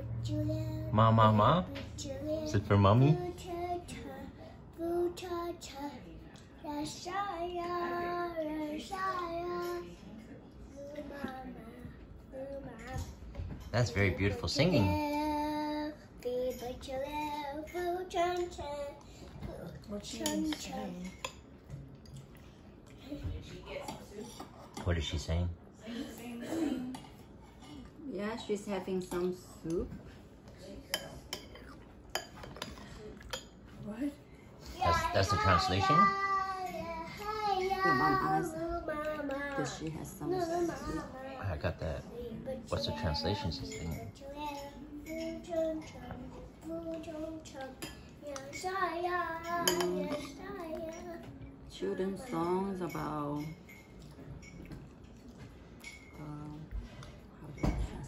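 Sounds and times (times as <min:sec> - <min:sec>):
young girl singing: 0:00.0 - 0:01.0, 0:01.6 - 0:10.0, 0:10.6 - 0:20.9, 0:34.7 - 0:39.6, 0:42.1 - 0:51.5.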